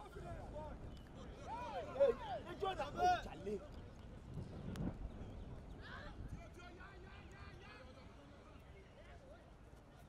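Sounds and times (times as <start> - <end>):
wind rumble on microphone: 0.0 - 7.5.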